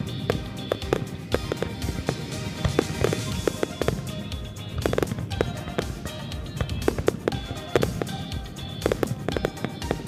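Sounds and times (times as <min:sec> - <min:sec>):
firework shells bursting: 0:00.0 - 0:10.0
music: 0:00.0 - 0:10.0.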